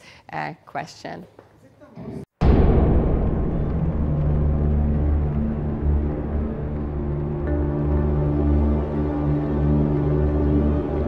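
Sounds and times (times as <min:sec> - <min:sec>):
deep rumbling drone: 0:02.4 - 0:11.0.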